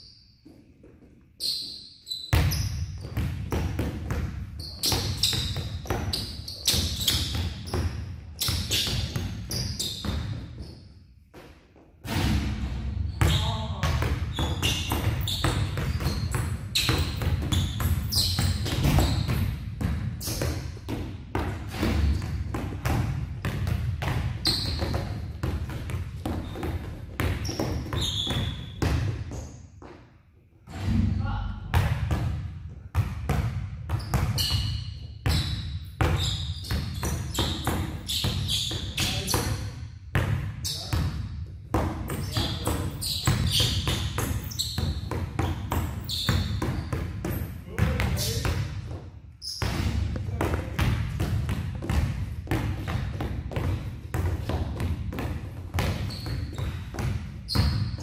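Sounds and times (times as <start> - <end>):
shoe squeaks: 0.0 - 3.1, 4.5 - 11.1, 13.1 - 19.5, 24.4 - 25.2, 26.3 - 28.8, 34.0 - 39.7, 40.6 - 40.9, 42.1 - 47.3, 49.4 - 50.0, 55.8 - 58.0
basketballs dribbling on gym floor: 2.3 - 30.1, 31.7 - 58.0.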